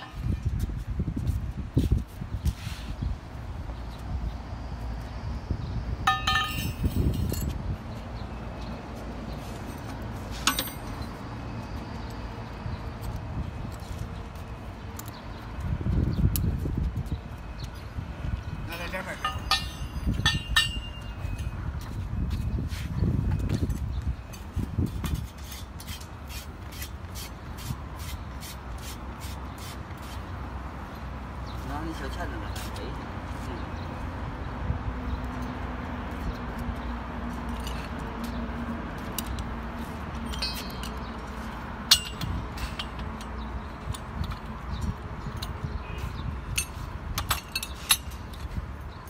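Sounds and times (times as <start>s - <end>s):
metal tube striking concrete: 6.1s - 6.9s, 19.2s - 21.1s
short metallic ring: 6.1s - 7.5s, 19.2s - 21.3s, 40.3s - 41.0s
light metallic clink: 6.1s - 7.6s, 19.2s - 21.2s, 40.3s - 41.0s, 41.9s - 43.3s.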